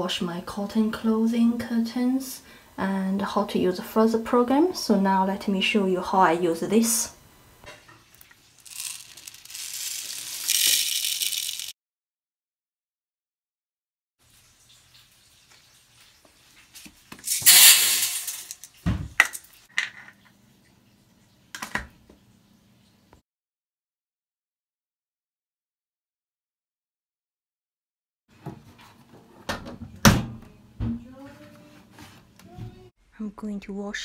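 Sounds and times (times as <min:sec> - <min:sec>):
beads poured with rattling hiss: 0:08.3 - 0:11.8, 0:17.2 - 0:18.8.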